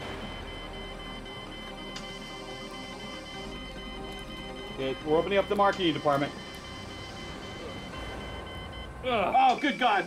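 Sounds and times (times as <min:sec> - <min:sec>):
low steady hum: 0:00.0 - 0:10.0
pulsing high-pitched electronic tone: 0:00.0 - 0:10.0.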